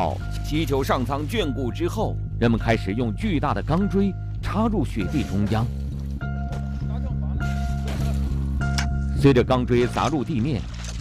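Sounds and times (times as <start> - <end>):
sustained low chord: 0.0 - 11.0.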